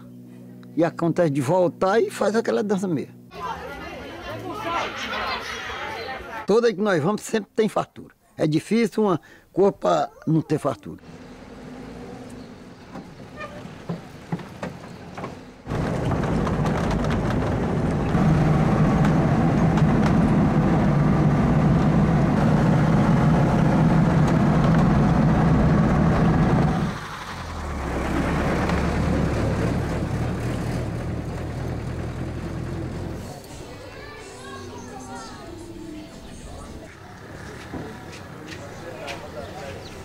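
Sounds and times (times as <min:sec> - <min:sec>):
road noise: 0:10.6 - 0:40.0
truck engine running: 0:11.0 - 0:34.1.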